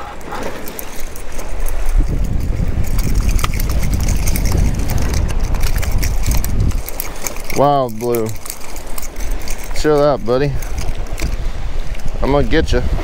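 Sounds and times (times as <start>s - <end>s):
fishing reel gears ticking: 0.5s - 12.3s
low rumble: 1.8s - 7.0s.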